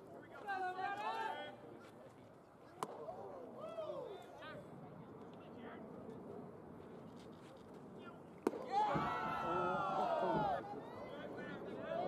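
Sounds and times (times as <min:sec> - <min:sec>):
baseball popping into mitt: 0:02.8 - 0:03.1, 0:08.4 - 0:09.1.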